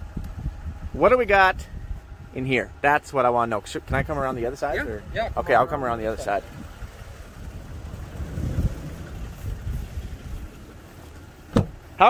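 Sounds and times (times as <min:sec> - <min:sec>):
wind buffeting microphone: 0:00.0 - 0:02.8, 0:03.8 - 0:11.9
truck door latch click: 0:11.5 - 0:11.8.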